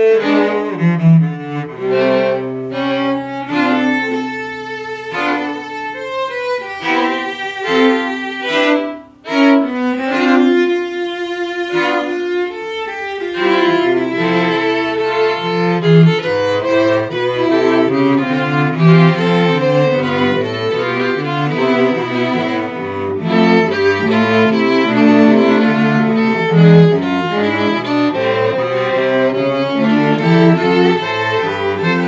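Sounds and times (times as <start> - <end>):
string quartet playing: 0.0 - 32.0.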